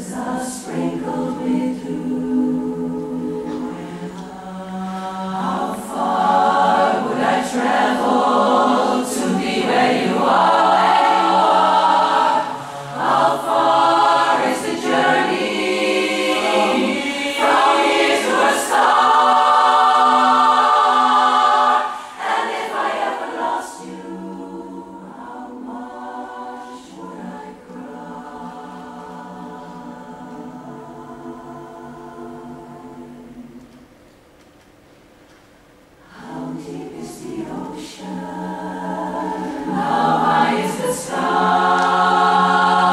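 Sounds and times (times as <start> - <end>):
women's chorus singing a cappella: 0.0 - 33.9, 36.0 - 42.9.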